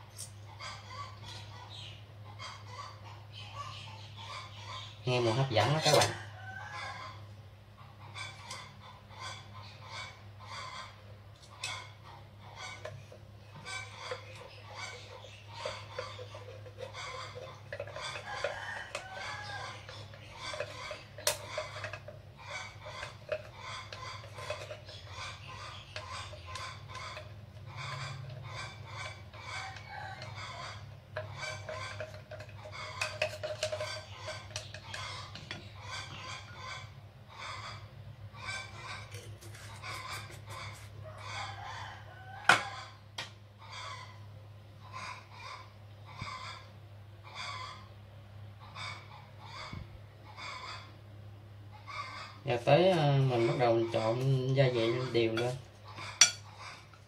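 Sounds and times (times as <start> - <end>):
chickens clucking: 0.0 - 57.0.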